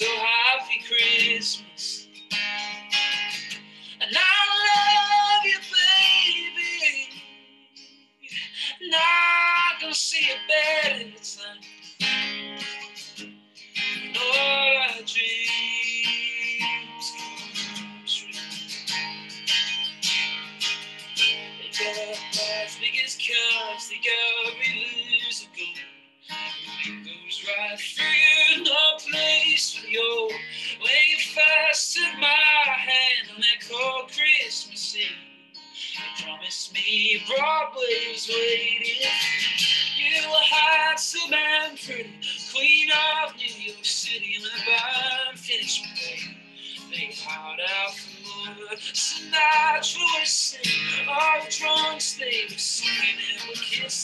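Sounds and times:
person singing slow song: 0.0 - 2.2, 3.5 - 7.3, 8.2 - 12.3, 13.8 - 18.5, 21.5 - 54.0
acoustic guitar strumming: 0.0 - 54.0.

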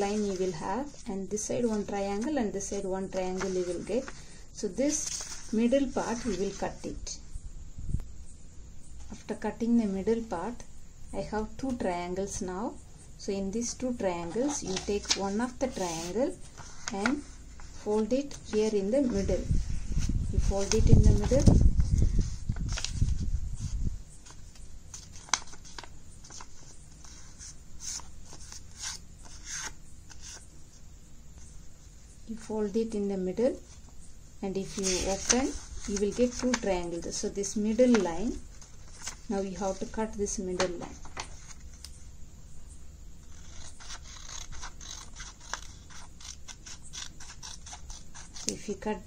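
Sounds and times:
paper crinkling and rustling: 20.4 - 23.2, 24.2 - 29.7, 34.7 - 36.7, 37.8 - 40.0
sharp paper crackle: 24.2 - 30.4, 34.7 - 36.7, 43.2 - 48.6
scissors snipping paper: 43.3 - 48.6.

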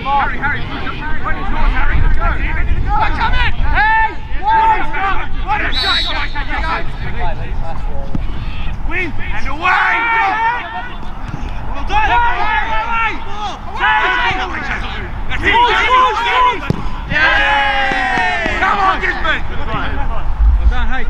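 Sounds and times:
men shouting: 9.3 - 10.9, 11.8 - 19.4.

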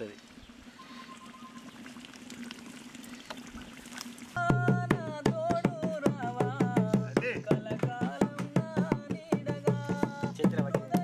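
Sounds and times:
faint outdoor background: 0.0 - 11.0
hand drum beating: 4.4 - 11.0
person singing: 4.4 - 11.0.

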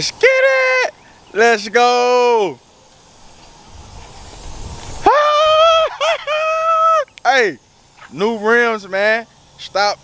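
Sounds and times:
man shouting excitedly: 0.0 - 2.6, 5.0 - 7.6
low rumble with hiss: 0.0 - 10.0.

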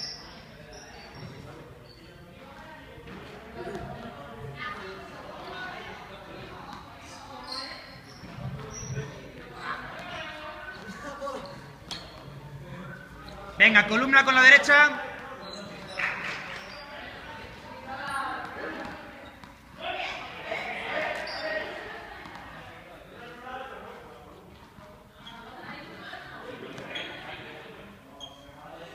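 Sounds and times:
balls thudding and slapping: 8.2 - 12.4, 18.3 - 19.8, 21.0 - 22.7
men talking: 10.6 - 17.2.

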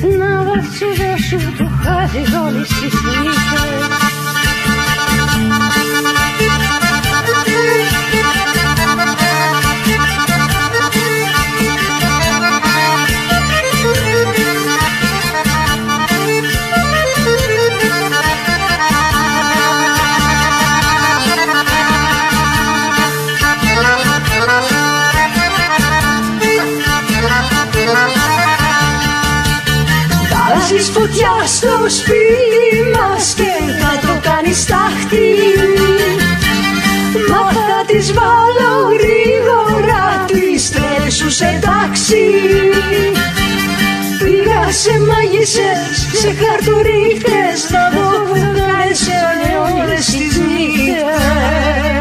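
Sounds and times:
bass and drum beat: 0.0 - 52.0.

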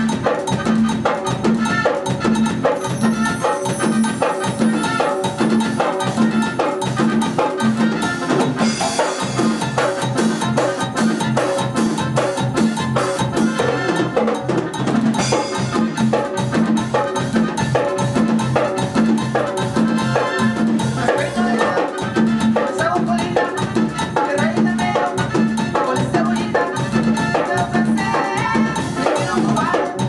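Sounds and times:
drum kit: 0.0 - 30.0
electric bass: 0.0 - 30.0
keyboards: 0.0 - 30.0.

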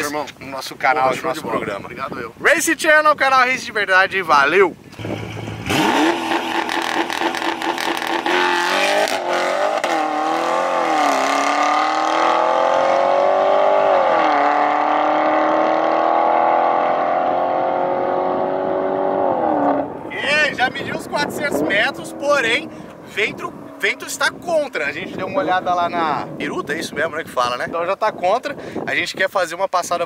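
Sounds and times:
car engine accelerating hard: 5.0 - 20.0.

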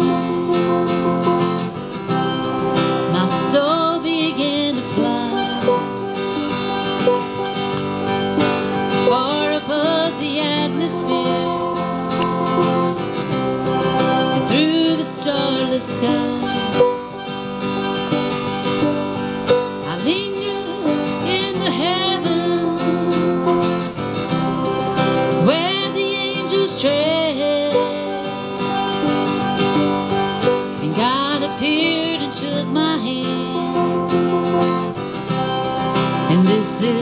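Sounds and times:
acoustic guitar strumming: 0.0 - 37.0
sliding melodic lead line: 0.0 - 37.0.

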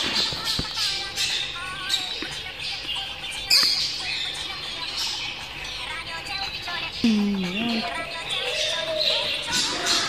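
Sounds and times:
chicks peeping: 6.5 - 10.0.

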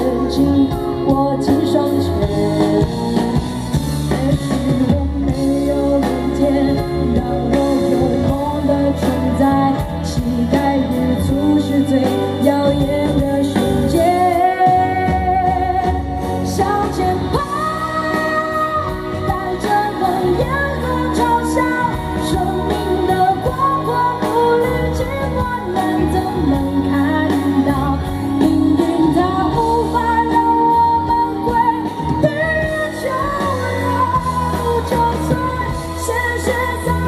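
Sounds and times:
drums: 0.0 - 37.0
electric guitar: 0.0 - 37.0
woman singing into a microphone: 0.0 - 37.0.

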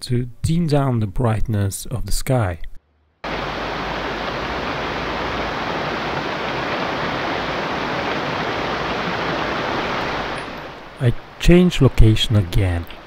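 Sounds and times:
stream rushing over rocks: 3.2 - 13.0.

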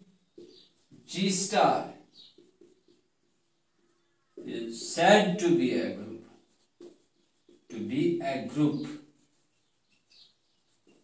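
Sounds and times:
marker squeaking on whiteboard: 0.0 - 11.0.

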